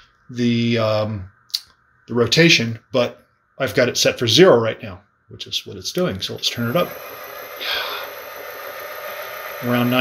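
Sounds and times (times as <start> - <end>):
thin high motor tone: 6.2 - 10.0
electric motor running: 6.3 - 10.0
short breathy hiss: 7.6 - 8.2.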